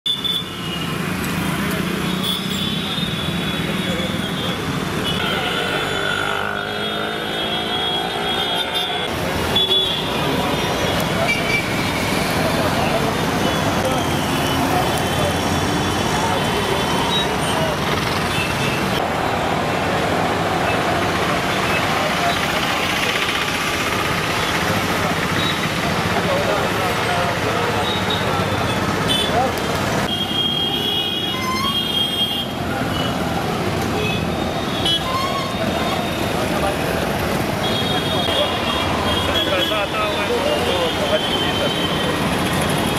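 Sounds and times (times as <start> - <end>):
motor vehicles running: 0.8 - 30.1, 32.5 - 42.9
car horns tooting: 2.2 - 12.4, 33.9 - 36.3, 37.6 - 42.3
people's voices: 3.5 - 30.1, 32.6 - 42.9.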